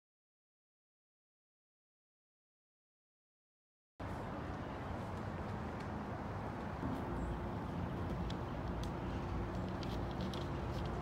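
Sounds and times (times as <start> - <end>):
low outdoor rumble: 4.0 - 11.0.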